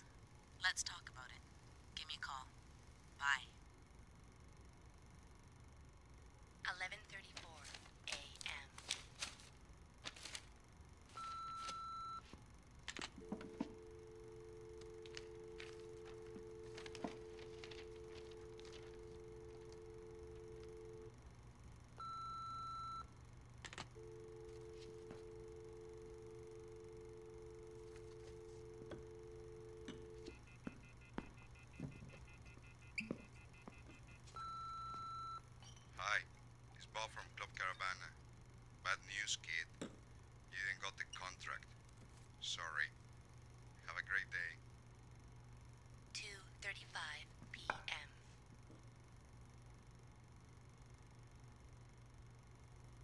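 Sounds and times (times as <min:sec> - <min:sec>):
answering machine beep: 0:11.2 - 0:12.2, 0:22.0 - 0:23.1, 0:24.0 - 0:35.4
telephone dial tone: 0:13.1 - 0:21.2, 0:23.7 - 0:31.1.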